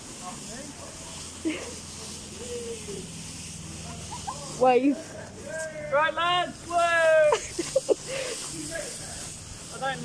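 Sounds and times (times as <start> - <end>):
blower fan hiss and hum: 0.0 - 10.0
people laughing and calling out: 1.0 - 9.3.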